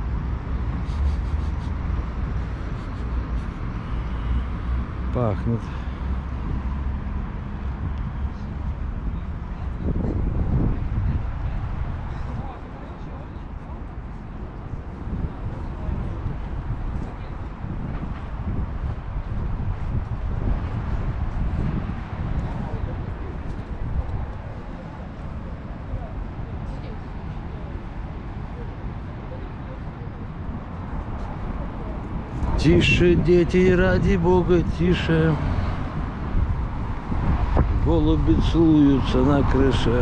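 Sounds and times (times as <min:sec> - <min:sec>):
distant traffic: 0:00.0 - 0:40.0
wind rumbling on microphone: 0:00.0 - 0:40.0.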